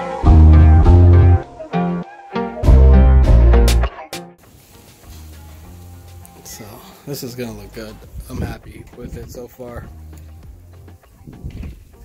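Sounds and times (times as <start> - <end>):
guitar note: 0.0 - 4.4.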